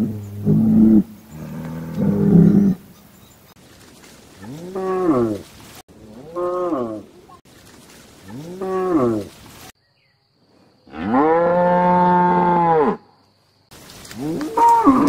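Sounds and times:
cows mooing: 0.0 - 2.8, 10.9 - 13.0, 14.2 - 15.0.

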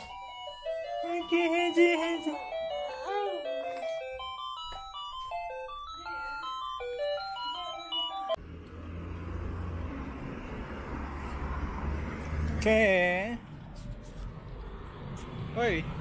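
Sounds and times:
electronic toy beeping tune: 0.0 - 8.4.

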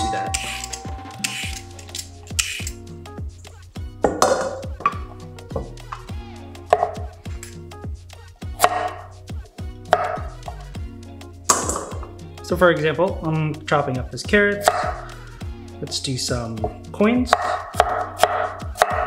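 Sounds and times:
background music with steady beat: 0.0 - 19.0
peeler scraping carrot: 0.4 - 2.8
knife cutting onto wooden board: 9.9 - 10.3.

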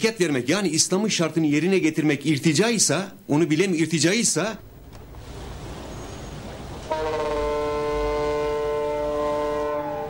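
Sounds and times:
multi-tone horn chord: 6.9 - 10.0.

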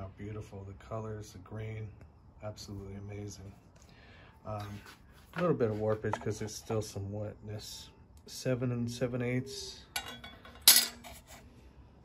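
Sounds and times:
steel rule clinking on metal: 10.0 - 11.1.

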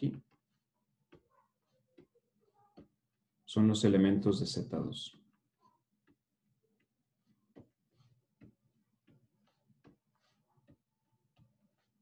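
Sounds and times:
stylus tapping a pen tablet: 0.2 - 3.0, 5.1 - 11.9.

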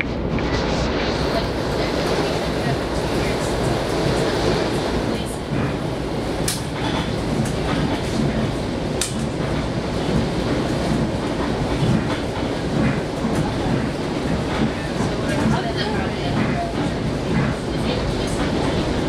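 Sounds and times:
train running rumble: 0.0 - 19.0.

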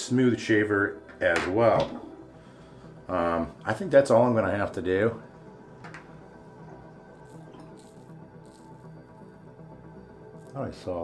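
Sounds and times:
soft background music: 0.0 - 11.0
razor scraping stubble: 7.2 - 8.8.

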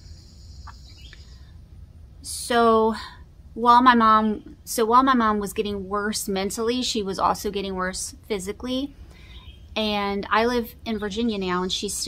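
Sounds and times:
high insect drone: 0.0 - 1.5.

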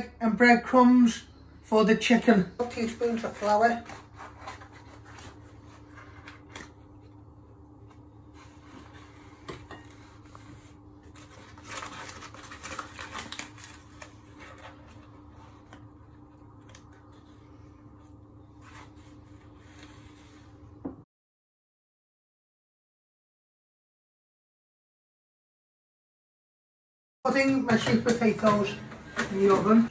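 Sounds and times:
steady low hum: 0.0 - 21.0
paper bag crinkling: 11.0 - 15.7.

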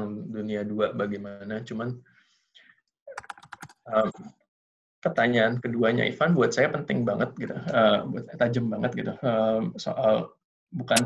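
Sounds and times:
computer keyboard typing: 3.1 - 3.8.

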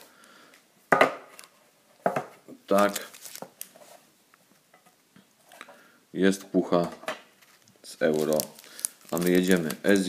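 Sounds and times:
foil packets rustling: 2.7 - 3.9, 7.4 - 10.0.

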